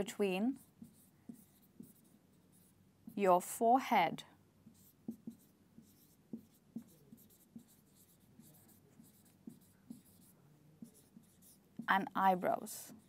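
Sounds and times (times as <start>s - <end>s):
marker pen writing on whiteboard: 0.0s - 3.3s, 4.6s - 13.0s.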